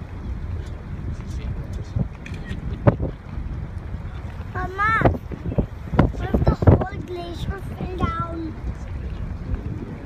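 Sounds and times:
low rumble of boat: 0.0 - 10.0
wind buffeting microphone: 0.0 - 10.0.

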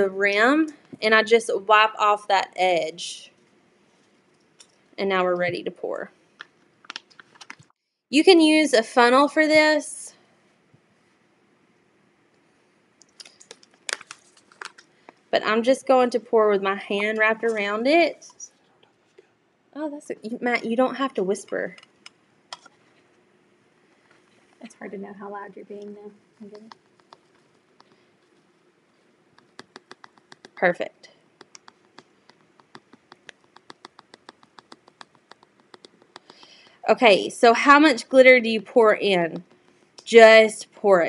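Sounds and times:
plastic bag crinkling: 13.1 - 15.0.

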